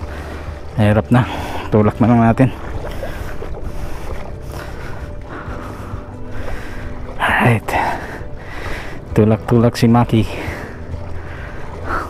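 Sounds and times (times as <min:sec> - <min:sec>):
floodwater sloshing and rushing: 0:00.0 - 0:12.0.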